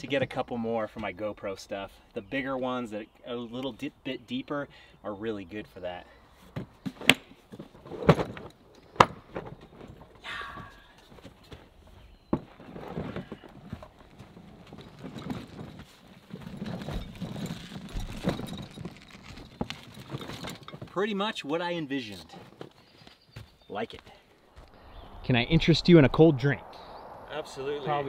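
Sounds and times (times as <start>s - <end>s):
plastic tool cases clacking: 6.9s - 10.1s, 12.6s - 21.0s
rolling toolbox rattling on wheels: 12.6s - 21.0s.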